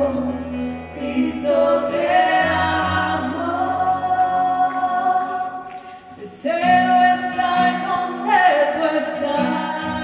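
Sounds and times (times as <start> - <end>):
choir singing worship song: 0.0 - 10.0
worship band playing: 0.0 - 10.0.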